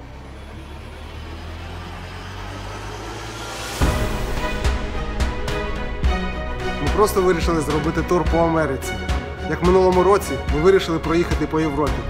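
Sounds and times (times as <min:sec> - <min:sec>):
low rumble: 0:00.0 - 0:09.5
backing music: 0:03.1 - 0:12.0
heavy hit: 0:03.7 - 0:08.4.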